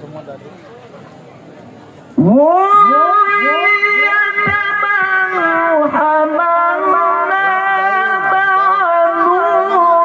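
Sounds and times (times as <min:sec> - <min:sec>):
man reciting through loudspeaker: 0:02.2 - 0:10.0.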